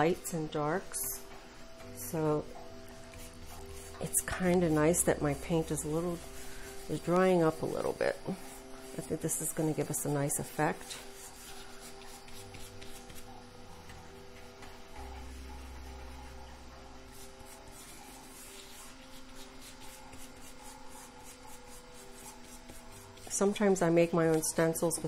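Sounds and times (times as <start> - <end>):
brush scratching on paper: 2.8 - 13.4, 15.0 - 25.0.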